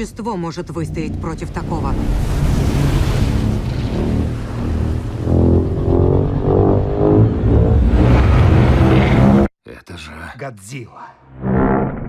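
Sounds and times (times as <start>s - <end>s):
deep rumble: 0.0s - 9.5s
dramatic music: 0.0s - 9.5s
rushing sea water: 0.8s - 9.3s.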